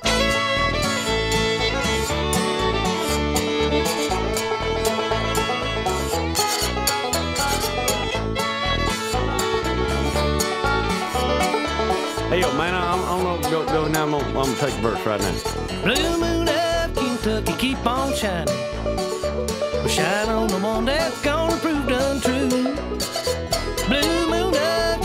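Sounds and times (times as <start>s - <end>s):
acoustic guitar strumming: 0.0s - 25.0s
bouncing bass beat: 0.0s - 25.0s
fiddle: 0.0s - 25.0s
picked banjo: 0.0s - 25.0s.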